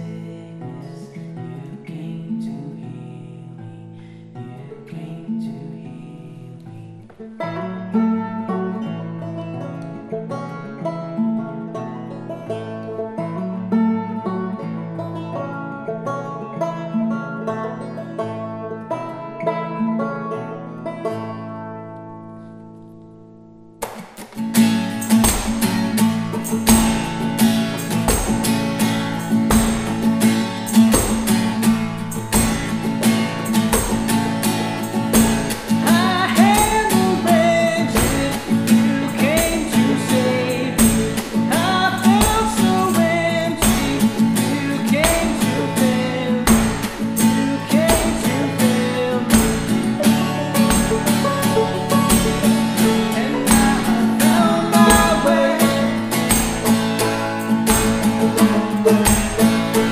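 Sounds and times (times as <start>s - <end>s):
acoustic guitar and banjo: 0.0s - 59.9s.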